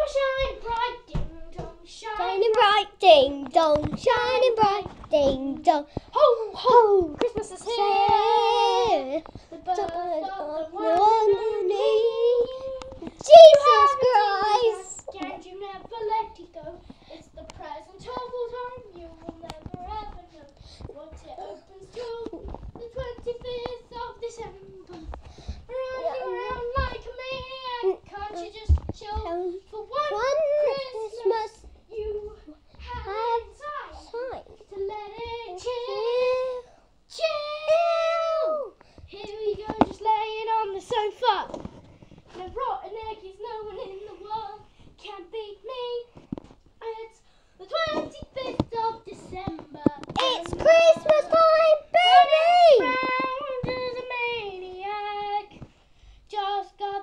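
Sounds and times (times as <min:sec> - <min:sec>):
child singing: 0:00.0 - 0:41.6, 0:42.3 - 0:46.2, 0:46.8 - 0:55.6, 0:56.3 - 0:57.0.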